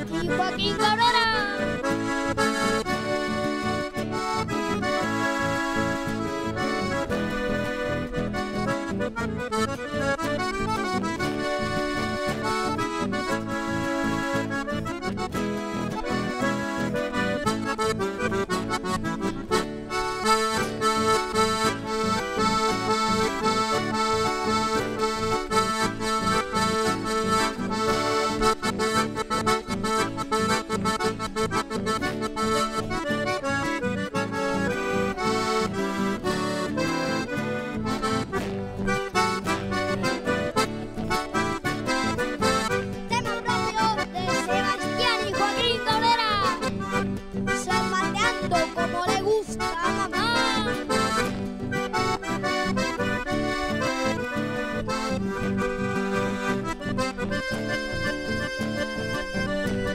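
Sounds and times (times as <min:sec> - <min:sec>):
accordion playing: 0:00.0 - 0:59.9
acoustic guitar strummed: 0:00.0 - 0:59.9.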